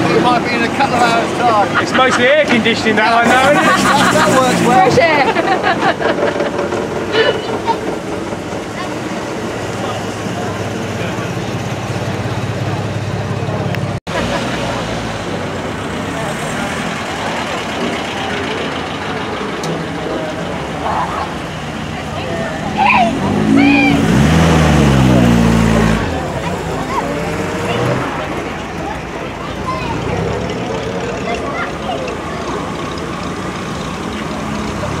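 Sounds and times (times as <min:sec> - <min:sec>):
car engines running: 0:00.0 - 0:35.0
voices: 0:00.0 - 0:35.0
engine revving as car pulls away: 0:02.6 - 0:05.3, 0:14.1 - 0:35.0.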